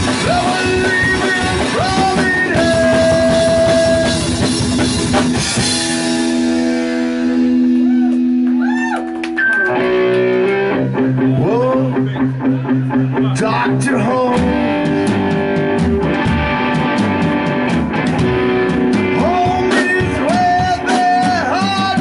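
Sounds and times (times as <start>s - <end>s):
drum kit: 0.0s - 22.0s
electric guitar: 0.0s - 22.0s
upright bass: 0.0s - 22.0s.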